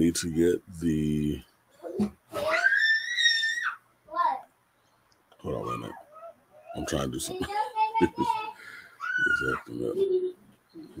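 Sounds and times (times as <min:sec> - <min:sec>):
child squealing: 0:02.3 - 0:03.8, 0:09.0 - 0:09.8.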